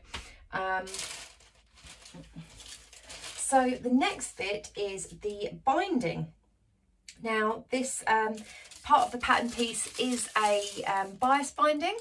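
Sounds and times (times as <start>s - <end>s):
fabric rustling: 0.9s - 3.7s, 8.4s - 11.3s.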